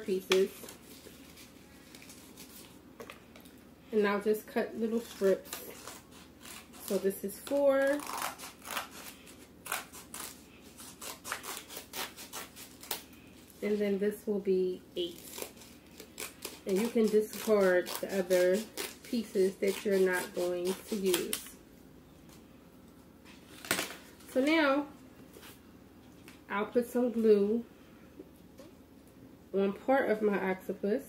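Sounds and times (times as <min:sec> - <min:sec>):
scissors snipping paper: 0:05.0 - 0:13.0, 0:15.0 - 0:21.5.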